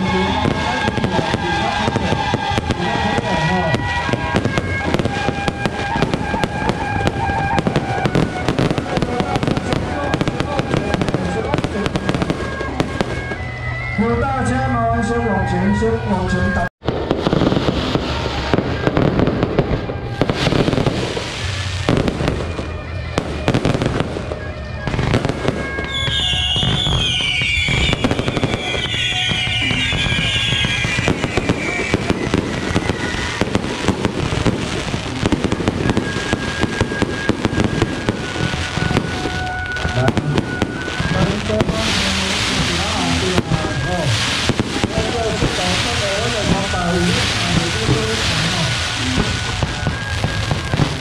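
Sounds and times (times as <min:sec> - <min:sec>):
fireworks crackling and banging: 0:00.0 - 0:51.0
high wavering whistles: 0:25.8 - 0:33.4.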